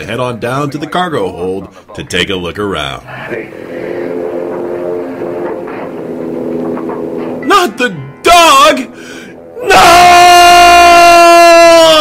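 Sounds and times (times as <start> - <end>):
low drone soundtrack: 3.1 - 11.9.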